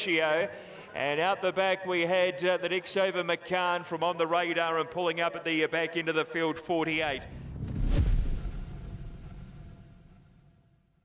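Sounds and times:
deep boom with rumbling tail: 7.1 - 10.6.

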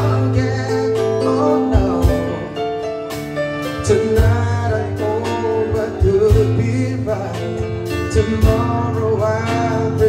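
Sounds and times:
person singing into microphone: 0.0 - 2.9, 3.7 - 10.0
electric guitar: 0.0 - 10.0
keyboard: 0.0 - 10.0.

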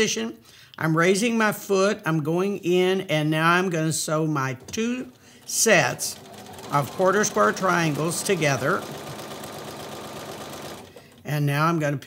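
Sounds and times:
sewing machine stitching: 4.6 - 11.6.

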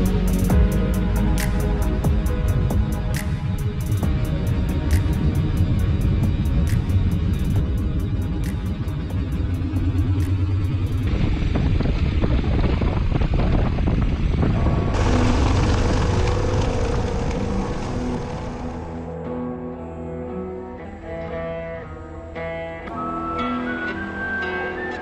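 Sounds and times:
background music: 0.0 - 11.7, 14.6 - 25.0
road and wind noise: 0.0 - 19.2
motorcycle engine running: 7.6 - 19.1.

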